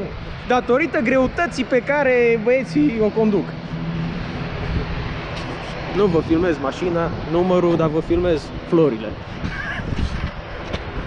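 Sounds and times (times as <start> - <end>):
jet engine rush: 0.0 - 11.0.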